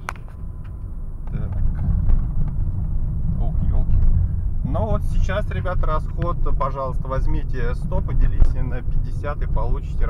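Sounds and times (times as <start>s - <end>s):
road and tyre rumble inside car: 0.0s - 10.0s.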